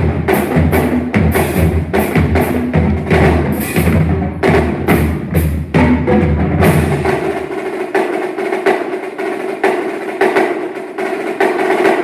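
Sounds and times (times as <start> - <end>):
bass drums: 0.0 - 7.8
snare and tenor drums: 0.0 - 12.0.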